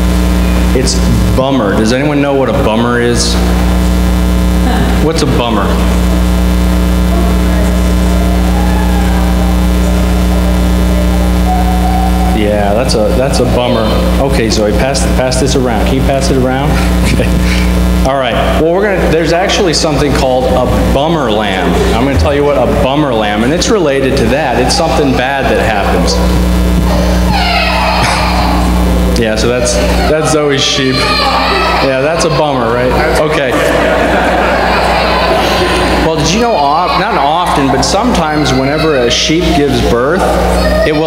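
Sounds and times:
electrical mains hum: 0:00.0 - 0:41.0
faint voices: 0:00.1 - 0:41.0
high wailing cry: 0:07.1 - 0:12.8, 0:24.4 - 0:41.0.

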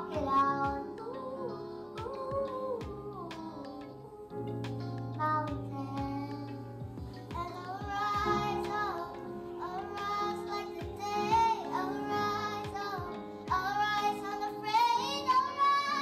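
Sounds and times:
instrumental accompaniment: 0:00.0 - 0:16.0
young girls singing: 0:00.0 - 0:16.0.

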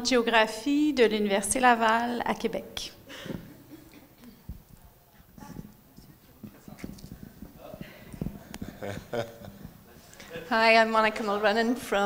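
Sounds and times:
microphone handling bumps: 0:03.2 - 0:03.6, 0:04.4 - 0:10.1.

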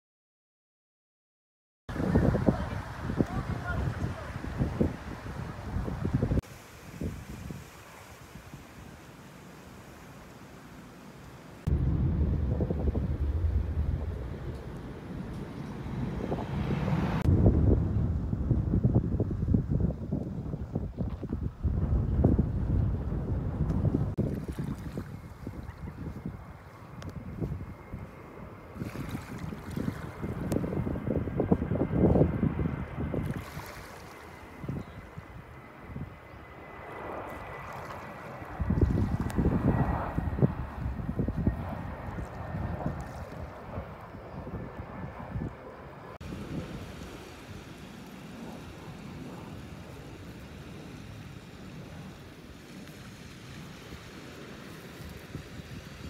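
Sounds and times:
wind rumbling on microphone: 0:01.9 - 0:09.0, 0:11.6 - 0:56.0
small waves on shore: 0:06.5 - 0:11.6, 0:24.2 - 0:26.0, 0:28.7 - 0:30.4, 0:33.2 - 0:34.6, 0:37.3 - 0:39.2, 0:46.2 - 0:56.0.

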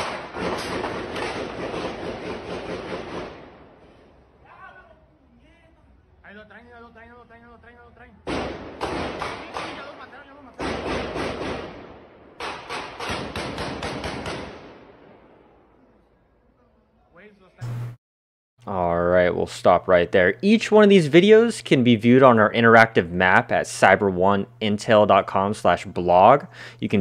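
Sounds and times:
rapid gunfire: 0:00.0 - 0:03.8, 0:08.3 - 0:15.1.

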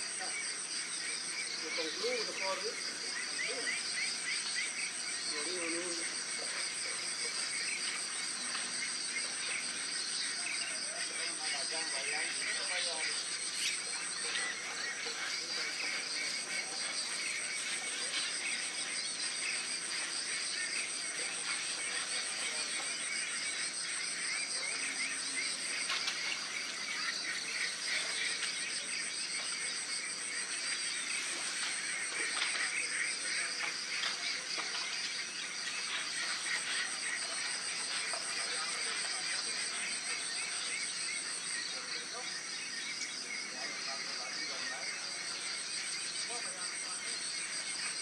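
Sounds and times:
frogs calling: 0:00.0 - 0:48.0
insect chirps: 0:00.0 - 0:48.0
insects trilling: 0:00.0 - 0:48.0.

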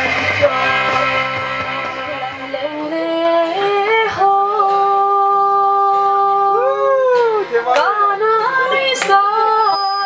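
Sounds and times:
woman singing into a microphone: 0:01.6 - 0:10.0.

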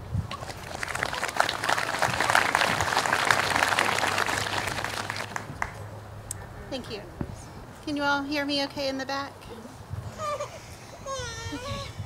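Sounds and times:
audience applauding: 0:00.4 - 0:05.8.

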